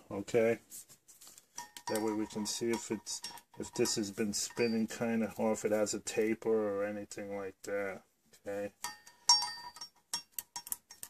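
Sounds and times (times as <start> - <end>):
metal tools clinking: 1.5 - 5.3, 8.8 - 11.0
light irregular ticks: 9.8 - 11.0.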